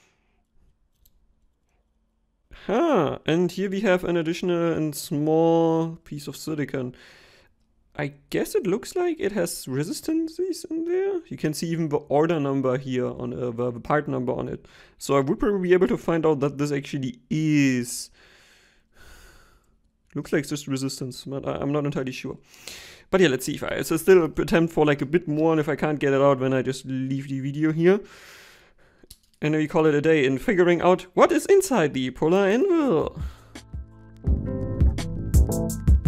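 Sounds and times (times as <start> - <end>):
man breathing softly: 7.0 - 7.6, 14.6 - 15.0, 18.2 - 19.8, 22.4 - 23.1, 28.0 - 29.1, 33.2 - 33.7.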